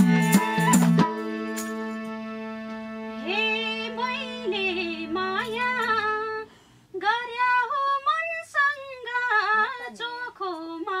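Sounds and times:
woman singing unaccompanied: 3.2s - 11.0s.

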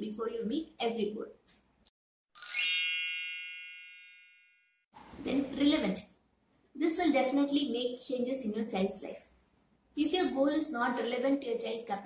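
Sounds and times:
bell-like ding: 2.4s - 4.8s.

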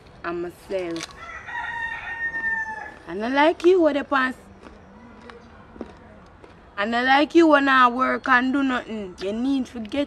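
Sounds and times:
rooster crowing: 1.2s - 3.1s.

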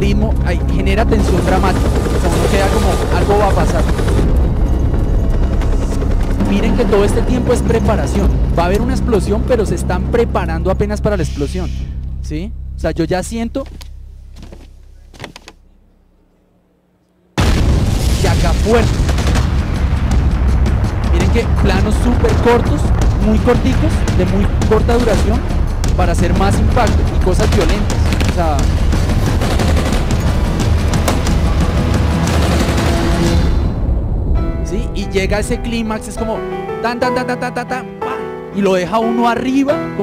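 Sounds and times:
dramatic music: 0.0s - 14.5s, 17.4s - 40.0s
gunfire: 17.4s - 20.6s, 26.8s - 33.6s
loud explosion: 17.4s - 36.1s.

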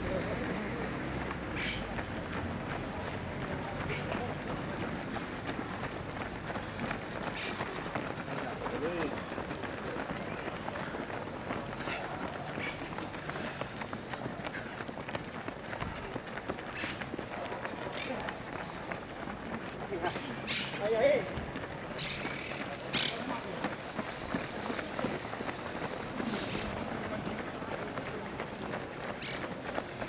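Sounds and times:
footsteps of runners on asphalt: 0.0s - 30.0s
scattered voices: 0.0s - 30.0s.

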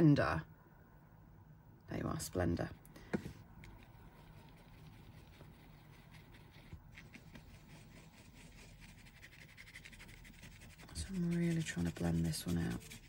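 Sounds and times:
paintbrush rubbing on fabric: 3.6s - 13.0s.

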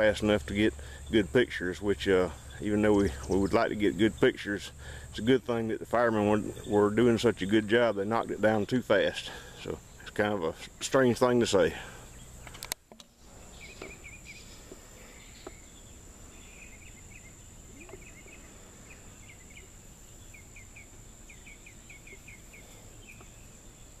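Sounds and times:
small bird chirping: 12.0s - 24.0s.

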